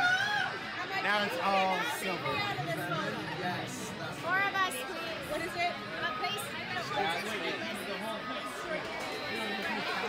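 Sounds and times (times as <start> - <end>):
overlapping conversation: 0.0 - 10.0.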